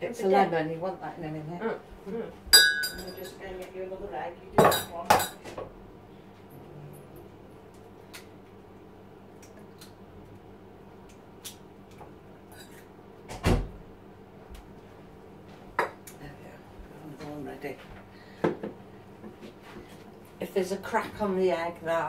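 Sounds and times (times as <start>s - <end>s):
crockery and utensils clinking: 2.6s - 3.4s.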